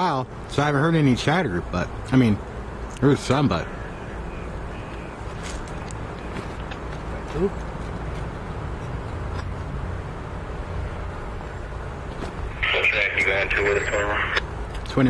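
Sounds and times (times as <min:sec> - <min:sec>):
diesel locomotive engine rumble: 0:03.0 - 0:15.0
radio voice: 0:12.5 - 0:14.4.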